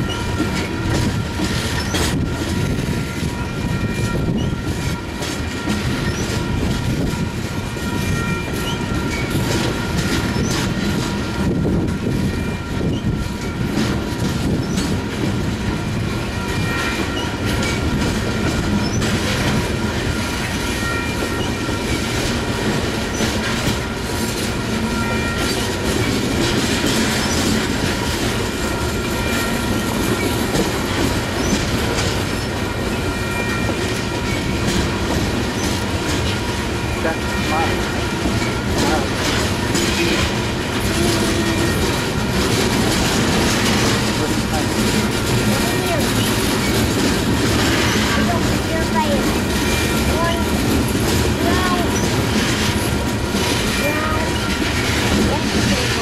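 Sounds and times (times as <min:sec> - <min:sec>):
train wheels rumbling over rail joints: 0:00.0 - 0:56.0.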